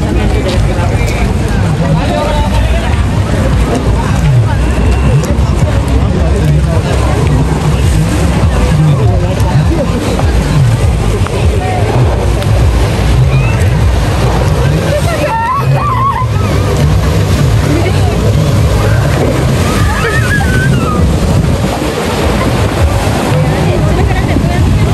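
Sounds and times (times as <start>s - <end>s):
jet ski engine: 0.0s - 24.9s
people's voices: 0.0s - 24.9s
rushing spray: 5.8s - 24.9s.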